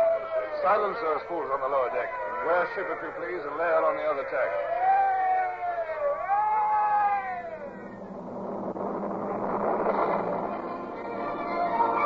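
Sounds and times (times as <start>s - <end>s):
rush of noise: 4.7s - 12.0s.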